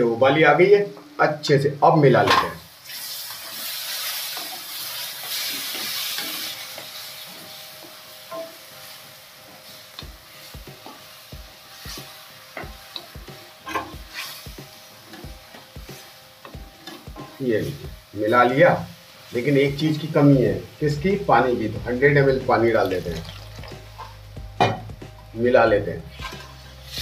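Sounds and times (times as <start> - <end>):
gravy sizzling in a pan: 0.0 - 27.0.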